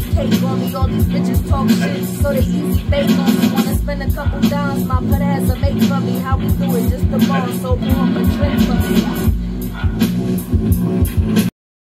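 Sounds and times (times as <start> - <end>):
hip hop beat: 0.0 - 11.5.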